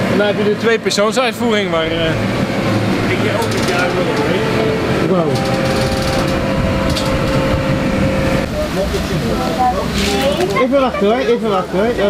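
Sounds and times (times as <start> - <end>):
paramotor engine idling: 1.8 - 8.6.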